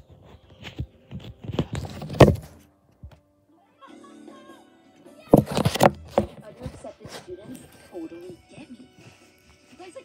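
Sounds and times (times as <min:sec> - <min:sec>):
film background music: 0:02.4 - 0:10.0.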